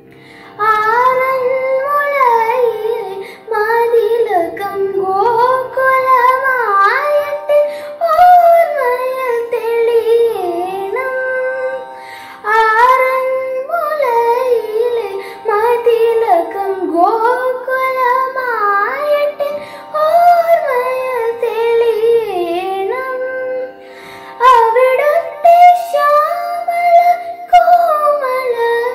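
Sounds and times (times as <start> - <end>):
girl singing devotional song: 0.0 - 28.9.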